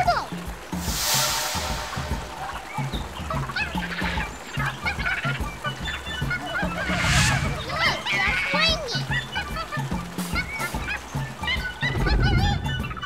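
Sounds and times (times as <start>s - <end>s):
background music with steady beat: 0.0s - 13.0s
bird-like calls: 0.1s - 13.0s
rush of noise: 6.4s - 8.4s.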